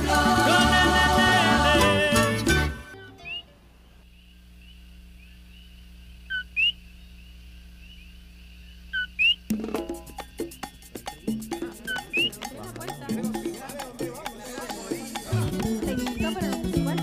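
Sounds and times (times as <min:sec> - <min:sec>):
music with a beat: 0:00.0 - 0:02.9, 0:09.5 - 0:17.0
close two-note frog calls: 0:02.9 - 0:12.5
frog chorus chirping: 0:03.0 - 0:17.0.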